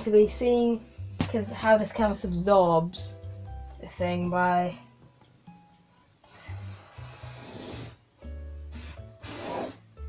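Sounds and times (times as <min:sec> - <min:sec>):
background music with bass line: 0:00.0 - 0:10.0
marker scratching on canvas: 0:08.8 - 0:09.8.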